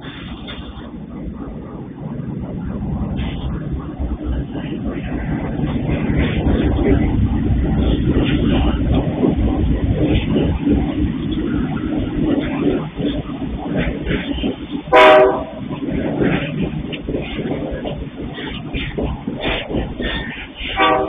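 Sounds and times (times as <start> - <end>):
diesel locomotive engine rumble: 0.0 - 21.0
train wheels on track: 0.0 - 21.0.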